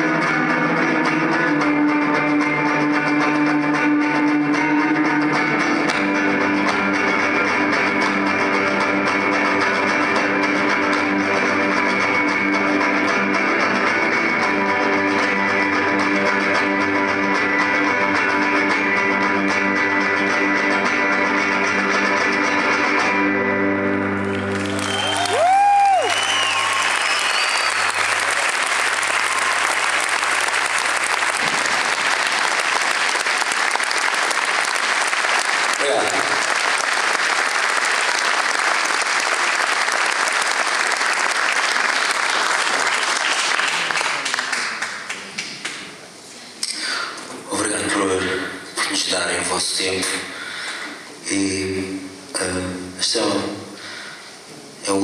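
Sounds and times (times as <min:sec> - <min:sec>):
electric guitar chord ringing: 0:00.0 - 0:24.7
crowd whooping: 0:24.2 - 0:34.5
applause and cheering: 0:24.2 - 0:45.9.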